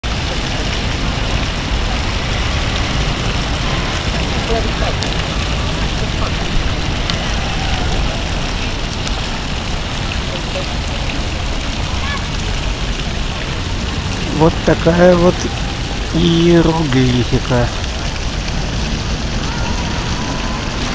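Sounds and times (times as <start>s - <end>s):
fountain water splashing: 0.0s - 20.9s
faint voices: 1.7s - 17.8s.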